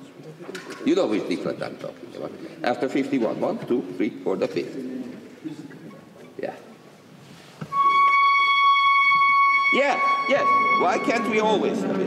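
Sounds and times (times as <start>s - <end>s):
sustained orchestral note: 7.7s - 12.0s.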